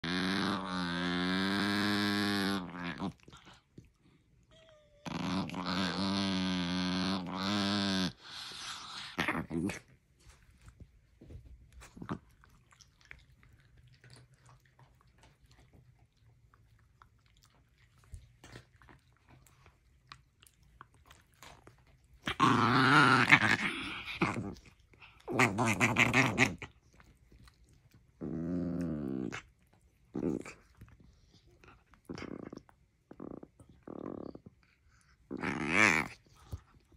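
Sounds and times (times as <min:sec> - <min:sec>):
small dog play growling: 0:00.0 - 0:36.9.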